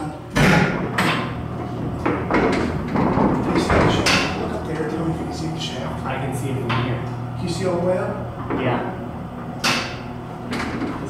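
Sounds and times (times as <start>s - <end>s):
elevator low electrical hum: 0.0s - 11.0s
elevator mechanical clunks: 0.3s - 11.0s.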